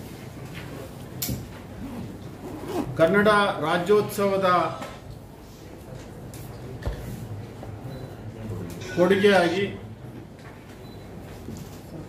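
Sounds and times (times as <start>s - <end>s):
man talking: 8.8s - 9.8s.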